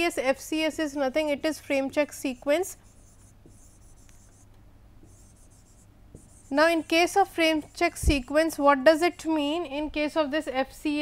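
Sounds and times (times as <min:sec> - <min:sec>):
low steady hum: 0:00.0 - 0:11.0
stylus scratching on a tablet: 0:00.6 - 0:09.7.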